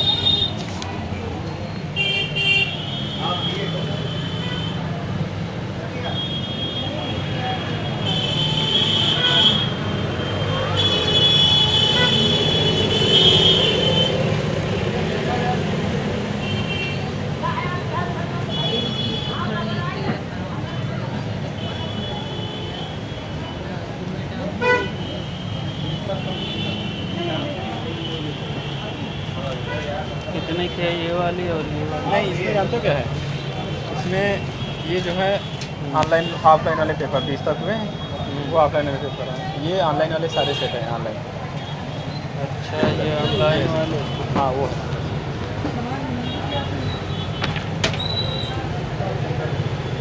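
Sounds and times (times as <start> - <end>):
traffic rumble: 0.0 - 50.0
vehicle horns honking: 2.0 - 4.8, 6.0 - 14.3, 24.6 - 31.0, 40.2 - 41.0, 41.6 - 44.6.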